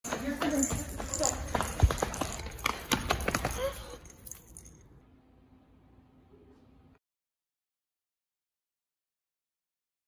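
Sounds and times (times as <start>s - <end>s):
running footsteps: 0.0s - 4.8s.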